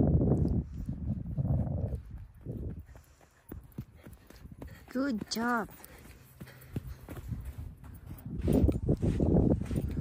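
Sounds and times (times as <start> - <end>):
wind rumbling on microphone: 0.0 - 5.3, 6.8 - 10.0
footsteps in loose sand: 0.1 - 10.0.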